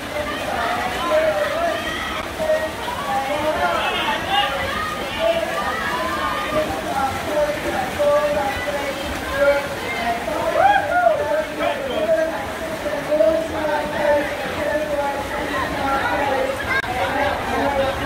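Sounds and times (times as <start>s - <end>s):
swimmers splashing: 0.0s - 18.0s
spectators shouting: 0.1s - 7.0s.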